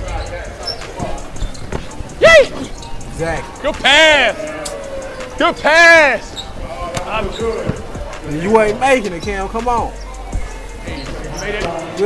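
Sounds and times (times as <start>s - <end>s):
background music: 0.0s - 12.0s
faint voices: 0.0s - 12.0s
basketball bouncing on court: 6.9s - 8.2s.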